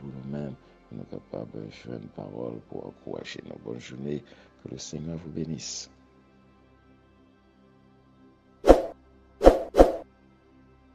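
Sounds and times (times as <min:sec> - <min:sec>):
faint background music: 0:00.0 - 0:10.9.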